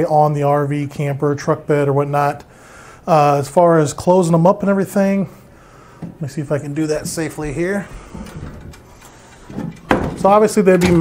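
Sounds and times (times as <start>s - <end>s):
metal steps handling and sliding: 6.0s - 11.0s.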